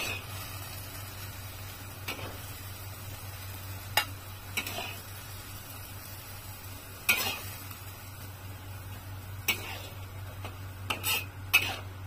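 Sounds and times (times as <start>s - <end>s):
noodles sizzling in a wok: 0.0s - 12.0s.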